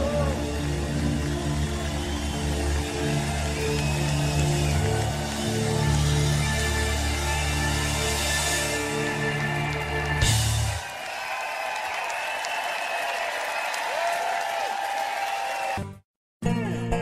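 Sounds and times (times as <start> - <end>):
crowd cheering and applauding: 0.0 - 16.0.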